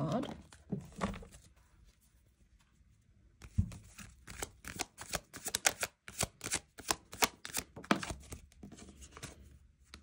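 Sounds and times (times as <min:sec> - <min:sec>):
cards being shuffled: 0:03.4 - 0:10.0.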